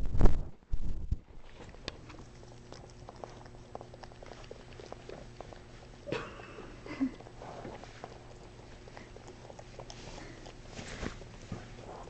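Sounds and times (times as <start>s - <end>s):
dog licking: 1.2s - 6.1s, 6.7s - 12.0s.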